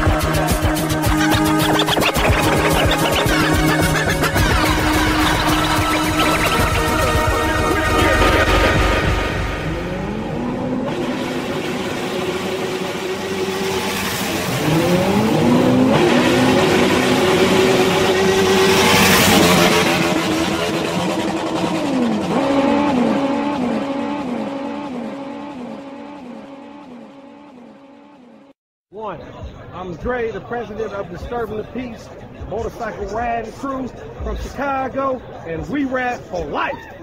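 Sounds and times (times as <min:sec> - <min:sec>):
engine revving and accelerating: 0:00.0 - 0:28.5.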